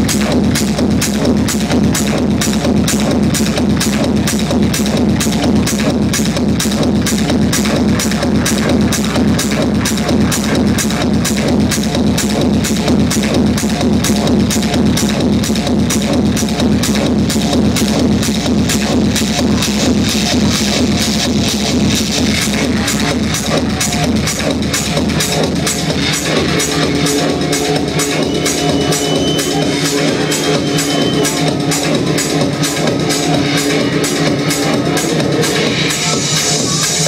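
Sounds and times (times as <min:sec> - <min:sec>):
kick drum beat: 0:00.0 - 0:35.9
techno music: 0:00.0 - 0:37.0.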